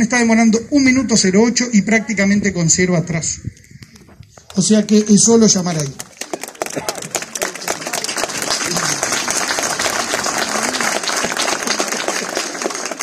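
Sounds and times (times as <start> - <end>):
crowd applauding: 4.5 - 13.0.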